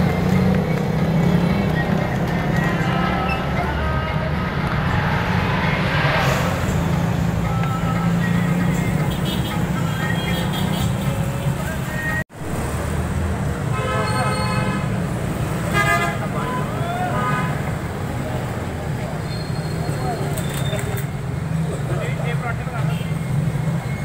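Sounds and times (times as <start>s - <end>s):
street traffic engines: 0.0s - 24.0s
vehicle horn: 9.0s - 11.2s, 13.7s - 14.9s, 15.7s - 17.6s.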